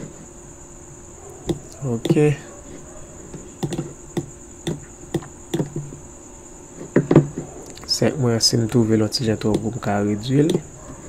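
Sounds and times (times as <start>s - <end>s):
person speaking: 1.5s - 2.8s, 7.7s - 10.7s
sharp click: 3.6s - 6.0s.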